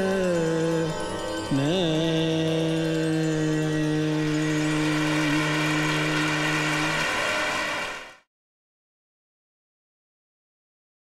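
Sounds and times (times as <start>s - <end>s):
tanpura drone: 0.0s - 8.2s.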